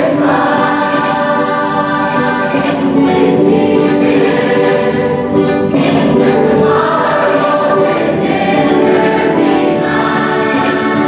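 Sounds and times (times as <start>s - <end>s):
choir singing slow song: 0.0s - 11.0s.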